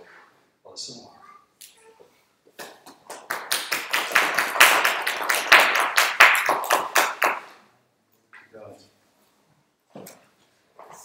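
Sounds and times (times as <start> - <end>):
audience applauding: 2.6 - 7.5.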